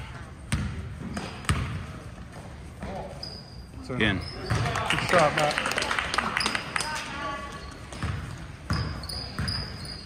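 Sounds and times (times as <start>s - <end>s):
basketball bouncing on gym floor: 0.0s - 3.1s, 4.4s - 4.9s, 7.8s - 10.0s
sneaker squeak on court: 0.5s - 1.8s, 2.8s - 4.8s, 7.4s - 10.0s.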